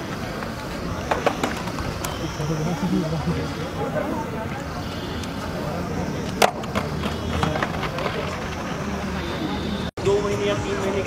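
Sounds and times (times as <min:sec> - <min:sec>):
indistinct voices: 0:00.0 - 0:11.0.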